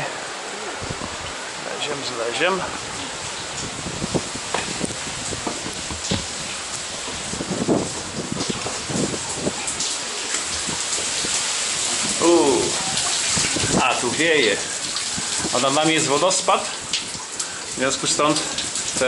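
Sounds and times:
waterfall rushing hiss: 0.0s - 19.0s
water dripping clicks: 12.9s - 19.0s.

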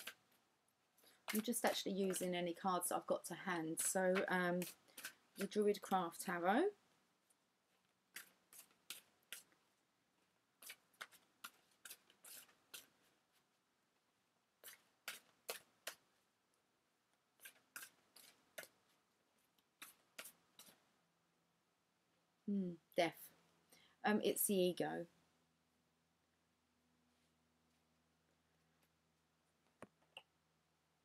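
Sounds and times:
cards being shuffled by hand: 3.6s - 6.3s, 8.1s - 9.5s, 10.6s - 13.5s, 14.6s - 16.0s, 17.4s - 19.0s, 19.6s - 20.8s.

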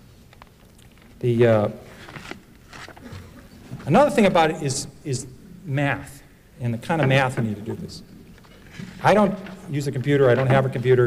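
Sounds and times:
man speaking: 1.2s - 1.8s, 3.8s - 8.1s, 9.0s - 11.0s.

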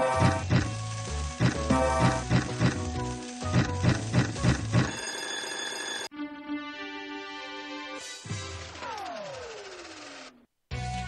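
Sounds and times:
electronic slot game jingle: 1.4s - 6.1s.

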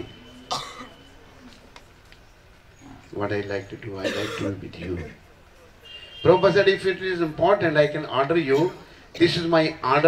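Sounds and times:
man coughing: 0.5s - 0.9s, 4.0s - 5.0s, 8.5s - 9.4s.

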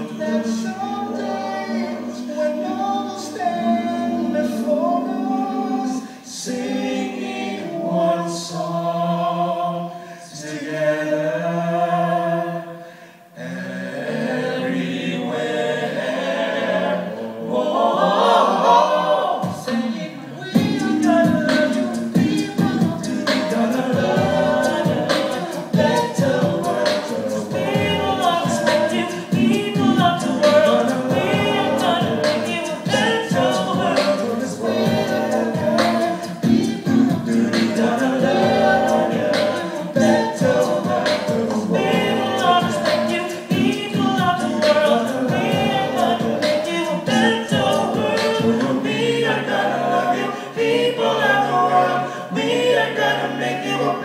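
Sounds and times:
vocal group singing in harmony: 0.0s - 54.0s
percussive beat: 19.2s - 19.8s, 20.5s - 49.2s.

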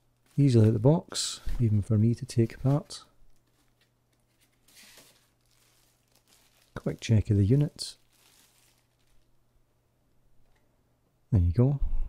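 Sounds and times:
plastic bag rustling: 0.0s - 9.5s.

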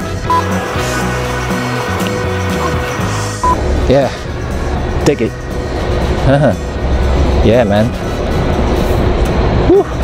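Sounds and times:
faint background music: 0.0s - 10.0s
traffic rumble: 0.0s - 10.0s.

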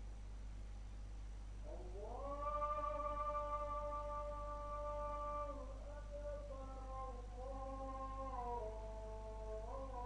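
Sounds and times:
long sung vocal note: 1.7s - 10.0s.

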